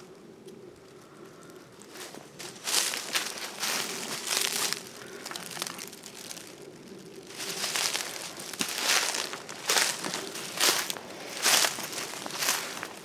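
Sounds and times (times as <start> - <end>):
footsteps crunching dry leaves: 1.8 - 13.0.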